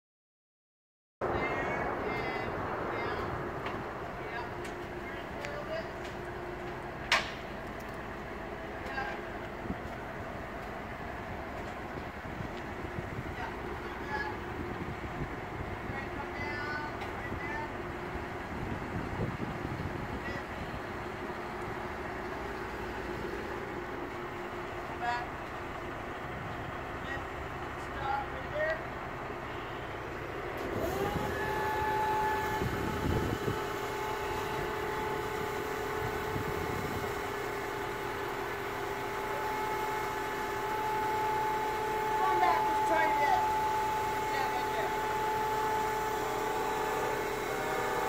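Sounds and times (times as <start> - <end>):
truck engine idling: 1.2 - 48.0
hydraulic pump whining: 3.0 - 48.0.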